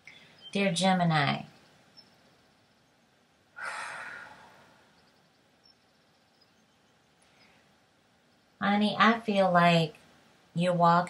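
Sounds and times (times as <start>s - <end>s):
woman sighing: 3.6s - 4.8s.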